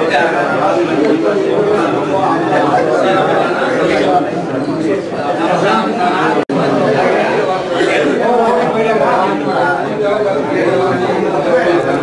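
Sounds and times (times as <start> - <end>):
many men chattering: 0.0 - 12.0.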